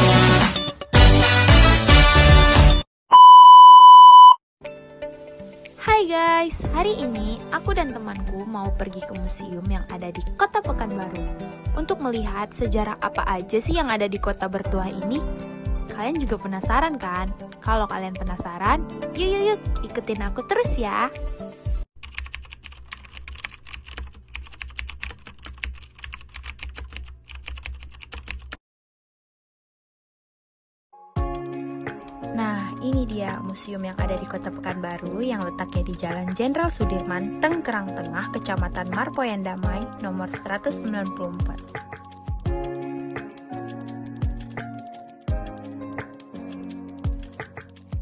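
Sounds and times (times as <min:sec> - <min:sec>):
upbeat music: 0:00.0 - 0:02.8, 0:05.9 - 0:21.8, 0:31.2 - 0:48.0
high-pitched test-tone beep: 0:03.1 - 0:04.4
keyboard typing clicks: 0:22.0 - 0:28.6.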